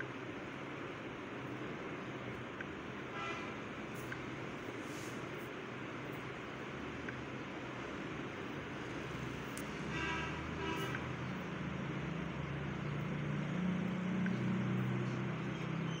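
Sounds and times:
traffic noise hiss: 0:00.0 - 0:16.0
car horn toot: 0:03.1 - 0:03.6, 0:09.8 - 0:11.0.

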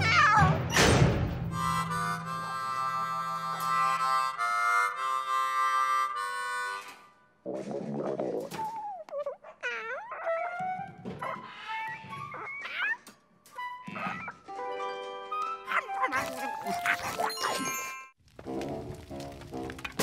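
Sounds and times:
harmonica chords: 0:01.5 - 0:07.1
wavering sliding harmonica tones: 0:01.5 - 0:07.1.

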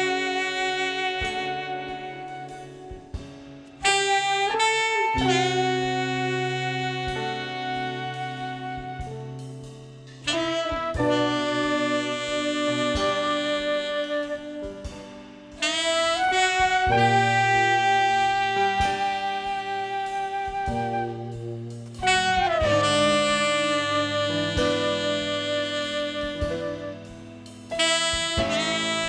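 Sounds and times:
saxophone and horns held notes: 0:00.0 - 0:09.5, 0:10.2 - 0:29.0
sustained bass notes: 0:15.8 - 0:29.0.

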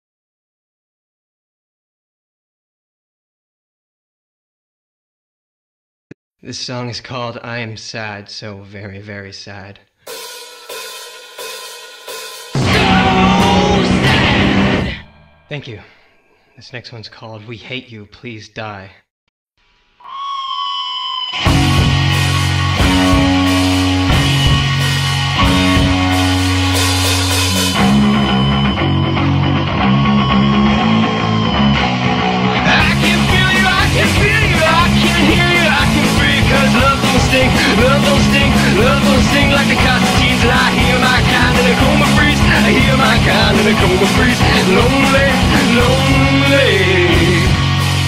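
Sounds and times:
cymbal strikes ringing: 0:10.1 - 0:16.6
bass guitar: 0:12.6 - 0:15.6, 0:21.4 - 0:48.0
electric guitar riff: 0:12.6 - 0:16.4, 0:21.3 - 0:48.0.

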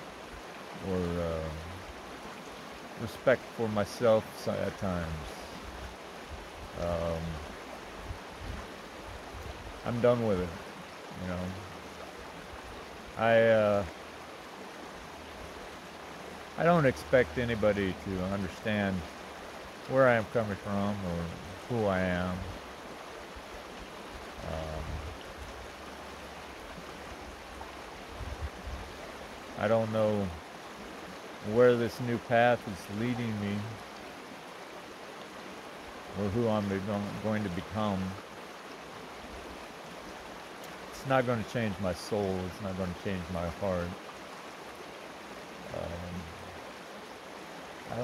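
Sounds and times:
creek running over rocks: 0:00.0 - 0:48.0.

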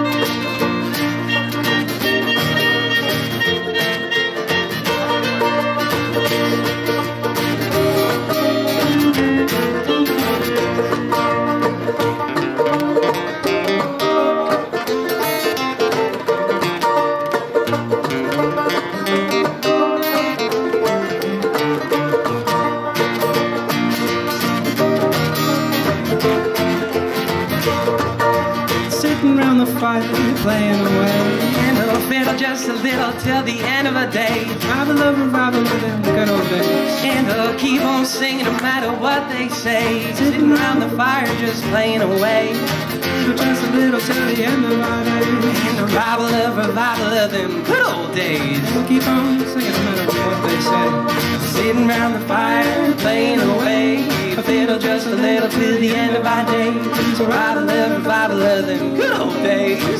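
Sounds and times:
acoustic guitar: 0:00.0 - 0:59.9
banjo: 0:00.0 - 0:59.9
fiddle: 0:00.0 - 0:59.9.

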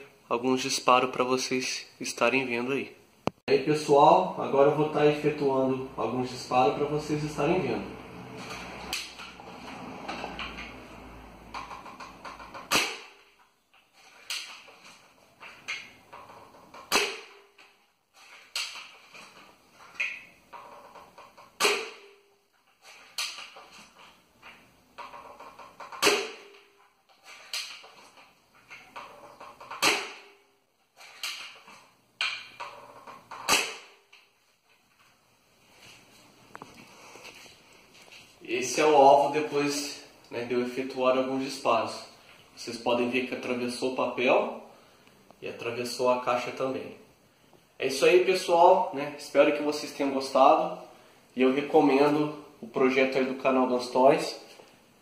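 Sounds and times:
airsoft rifle shots snapping: 0:12.6 - 0:13.3, 0:16.9 - 0:17.5, 0:21.6 - 0:22.2, 0:25.9 - 0:26.6, 0:29.7 - 0:30.4, 0:33.4 - 0:34.0.

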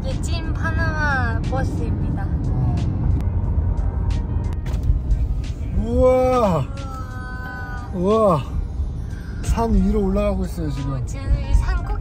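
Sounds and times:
bus running alongside: 0:00.0 - 0:12.0
traffic rumble inside moving car: 0:00.0 - 0:12.0.

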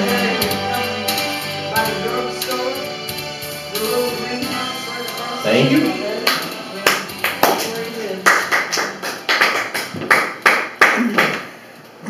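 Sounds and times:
people clapping: 0:06.2 - 0:11.6.

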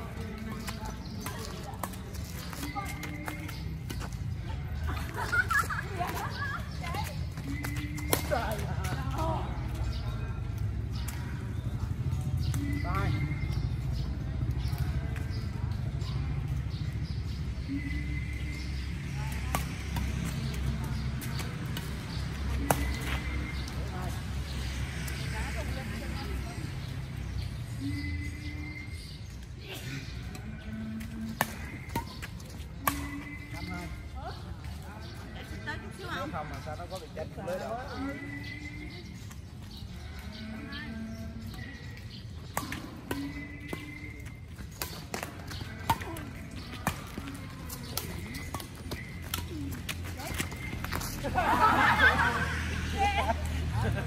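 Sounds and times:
low city rumble: 0:00.0 - 0:54.0
people's voices: 0:00.0 - 0:54.0
rackets striking shuttlecock: 0:19.3 - 0:23.8, 0:30.4 - 0:33.7, 0:42.2 - 0:51.4.

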